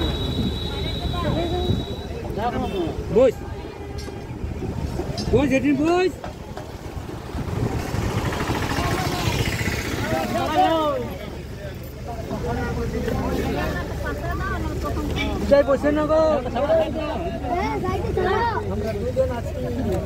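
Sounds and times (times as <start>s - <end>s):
bus engine rumbling: 0.0s - 20.0s
passengers chattering: 0.0s - 20.0s.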